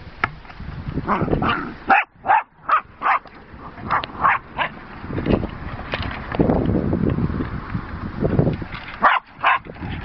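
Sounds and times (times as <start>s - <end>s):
dog barking high-pitched: 1.4s - 3.2s, 4.2s - 4.8s, 9.0s - 9.7s.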